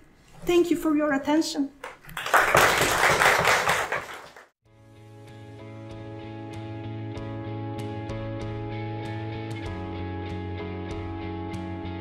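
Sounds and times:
audience applauding: 2.0 - 4.6
soft music with held notes: 4.8 - 12.0.

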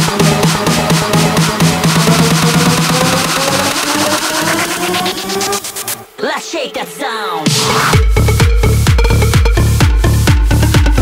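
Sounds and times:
electro house music: 0.0 - 11.0.

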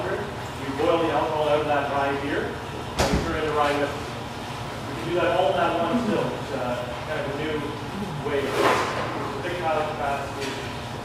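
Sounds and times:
people talking: 4.9 - 8.6, 9.4 - 10.6.

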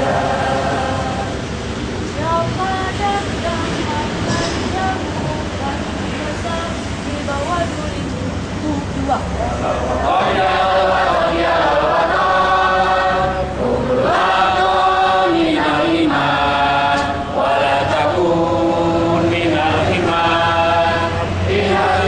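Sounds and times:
voices singing slow song: 0.0 - 22.0
woman leading singing: 2.2 - 9.0.

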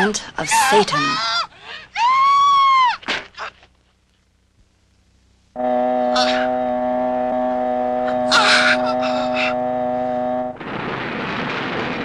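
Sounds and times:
sustained horror music chord: 5.6 - 10.6
man screaming: 8.2 - 9.6.

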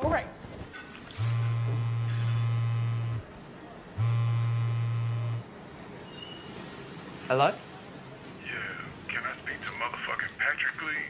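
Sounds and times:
mobile phone buzzing: 1.2 - 3.3, 4.0 - 5.5.

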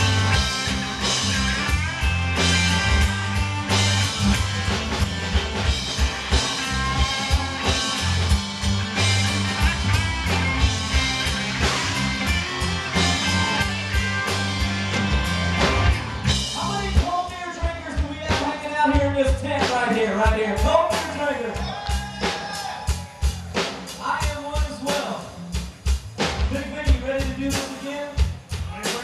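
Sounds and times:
country rock band playing: 0.0 - 29.0.

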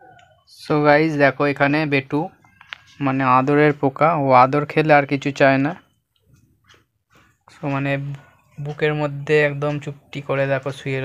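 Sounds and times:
man's voice: 7.6 - 11.0.

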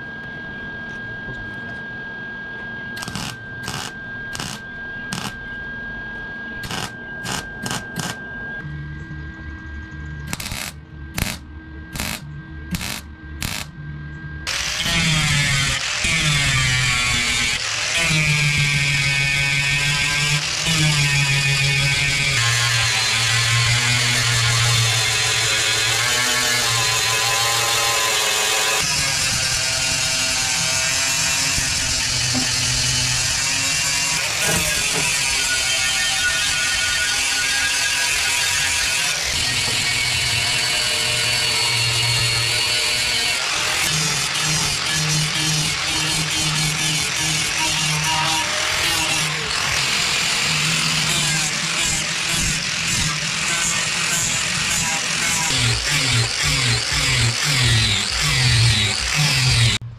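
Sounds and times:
angle grinder grinding steel: 3.0 - 5.4, 6.6 - 8.2, 10.3 - 11.4, 12.0 - 13.7, 14.5 - 59.8
tack welding bursts: 3.0 - 5.4, 6.6 - 8.2, 10.3 - 13.7.

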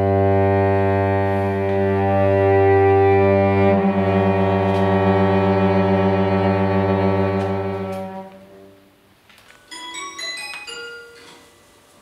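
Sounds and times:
cello bowed low note: 0.0 - 8.8.

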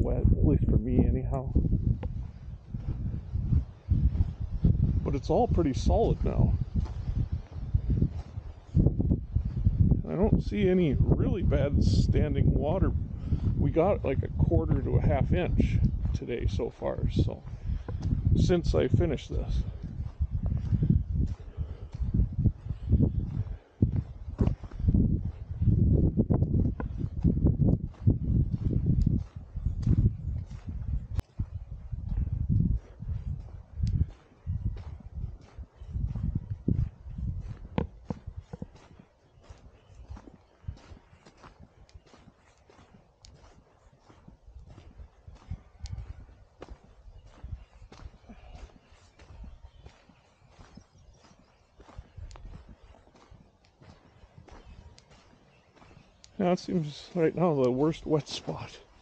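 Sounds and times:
low rumble on microphone: 0.0 - 59.0
footsteps on wet gravel: 0.9 - 59.0.

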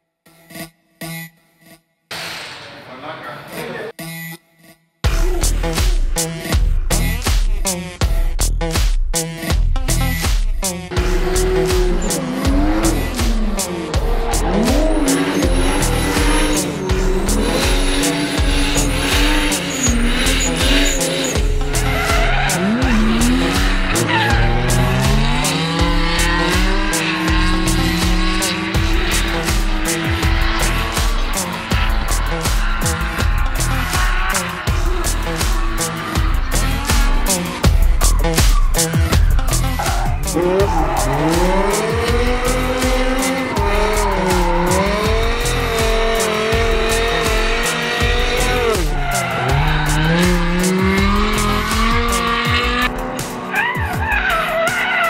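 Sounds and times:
background music with steady beat: 2.1 - 55.0
car engines revving: 10.0 - 55.0
tyres squealing: 11.1 - 52.8, 53.5 - 55.0.

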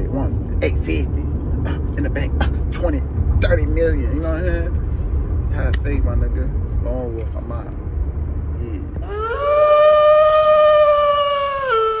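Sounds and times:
low rumble inside car: 0.0 - 12.0
wolf howl: 9.0 - 12.0.

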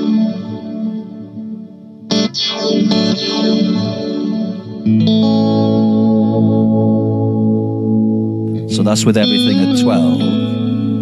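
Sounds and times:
electric guitar chord with echo: 0.0 - 11.0.

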